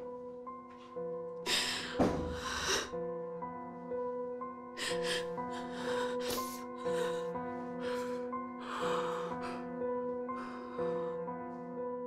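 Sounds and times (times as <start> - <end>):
slow music of held chords: 0.0 - 12.0
woman sobbing and gasping: 4.8 - 9.7.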